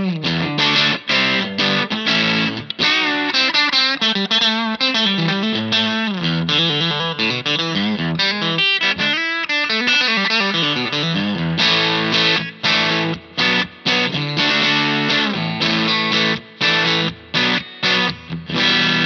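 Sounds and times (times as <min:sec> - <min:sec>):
electric guitar playing: 0:00.0 - 0:19.0.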